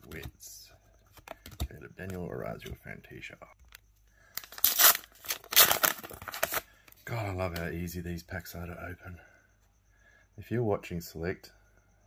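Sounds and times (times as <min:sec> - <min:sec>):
wrapper crinkling: 0:04.4 - 0:06.6
wrapper ripping: 0:04.4 - 0:06.6.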